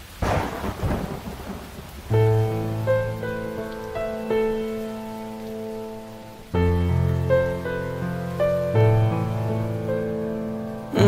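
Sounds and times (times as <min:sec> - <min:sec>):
steady rain hiss: 0:00.0 - 0:11.0
thunder crack and rumble: 0:00.2 - 0:02.2.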